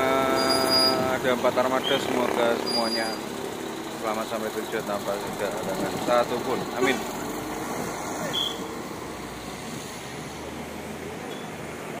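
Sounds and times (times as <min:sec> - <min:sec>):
motorbike engine: 0:00.0 - 0:11.9
road traffic passing: 0:00.0 - 0:12.0
brief high tone: 0:00.3 - 0:01.1.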